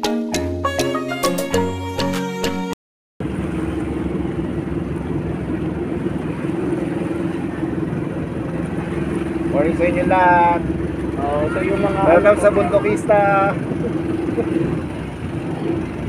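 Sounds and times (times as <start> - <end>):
boat engine drone: 3.2 - 16.0
person speaking: 11.2 - 13.6.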